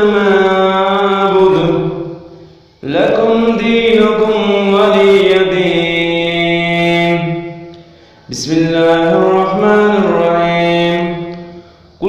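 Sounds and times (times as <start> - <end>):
person reciting melodically: 0.0 - 12.0.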